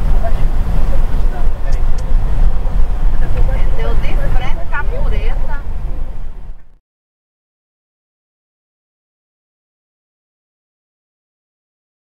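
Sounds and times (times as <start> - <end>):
faint voices: 0.0 - 6.7
car engine and tyres rumbling: 0.0 - 6.8.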